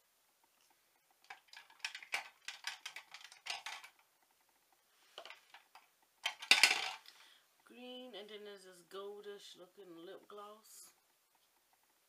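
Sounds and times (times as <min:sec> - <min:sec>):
plastic containers clicking and rattling: 0:01.2 - 0:04.1, 0:05.2 - 0:07.2.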